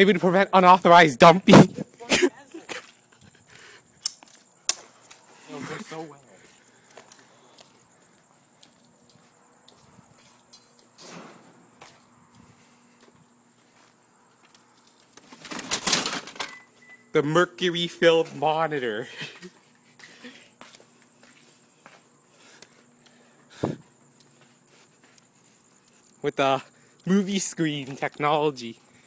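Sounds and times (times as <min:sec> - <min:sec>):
voices and laughter: 0:01.6 - 0:03.6, 0:19.0 - 0:20.6.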